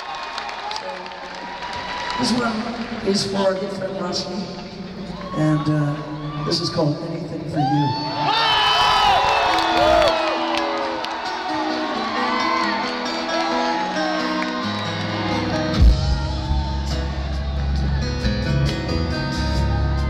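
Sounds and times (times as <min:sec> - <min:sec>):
crowd cheering and whooping: 0:00.0 - 0:03.0, 0:05.0 - 0:06.8, 0:07.6 - 0:20.0
live rock band playing: 0:09.6 - 0:20.0.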